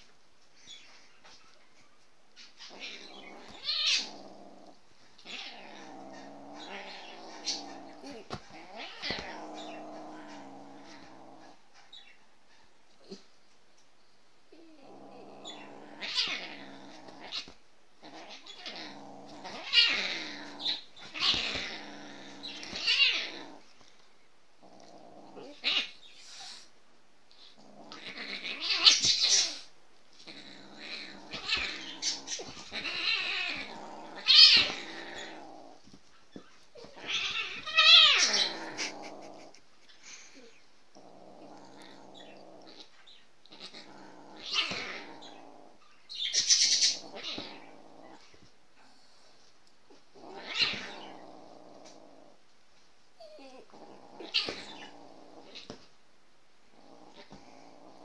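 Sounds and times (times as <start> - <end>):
kitten growling and yowling: 2.6 - 11.6, 14.5 - 23.8, 24.6 - 26.6, 27.6 - 36.0, 36.7 - 39.6, 40.3 - 48.5, 49.9 - 52.4, 53.2 - 55.9, 56.7 - 58.0.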